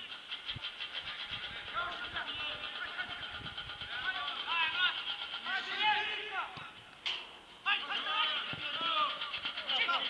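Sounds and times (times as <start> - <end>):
distant shouting voices: 0.1 - 10.0.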